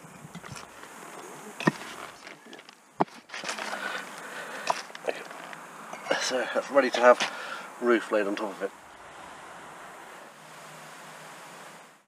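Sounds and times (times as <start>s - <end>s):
soft rustling and scraping: 0.4s - 7.4s
bricks knocking: 1.6s - 3.8s.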